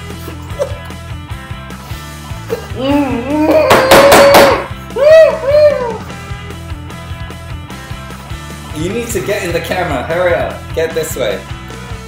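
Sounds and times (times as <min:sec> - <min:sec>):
background music: 0:00.0 - 0:12.0
man retching and groaning: 0:02.3 - 0:04.7.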